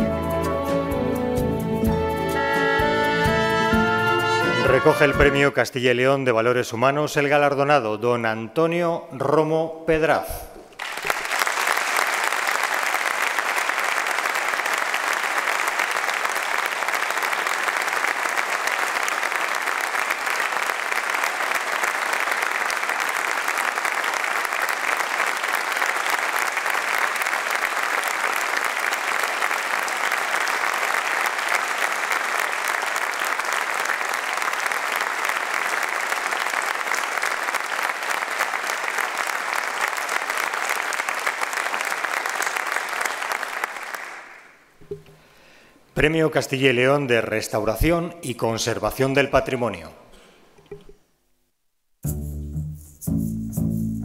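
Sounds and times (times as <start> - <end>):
audience applauding: 3.6 - 5.5, 10.7 - 44.6.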